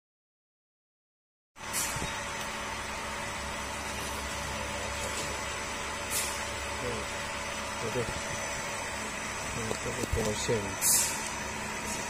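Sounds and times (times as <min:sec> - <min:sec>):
machinery hum: 0:01.6 - 0:12.0.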